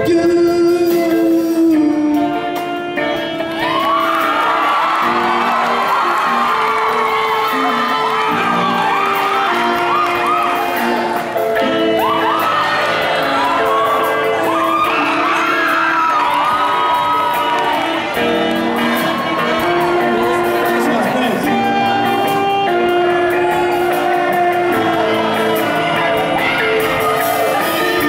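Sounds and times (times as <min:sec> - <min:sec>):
live band playing pop ballad: 0:00.0 - 0:28.0
audience whooping and screaming: 0:03.2 - 0:28.0.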